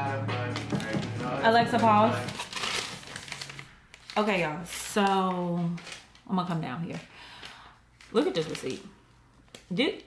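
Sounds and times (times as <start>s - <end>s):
paper receipt rustling: 1.7s - 10.0s.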